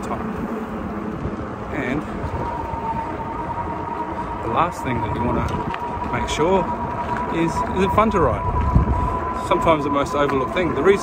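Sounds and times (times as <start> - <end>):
electric motor whine: 0.0 - 11.0
wind on microphone: 0.0 - 11.0.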